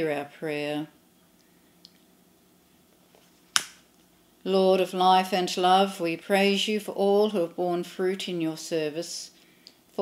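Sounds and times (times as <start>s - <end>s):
sharp click: 3.6s - 3.8s.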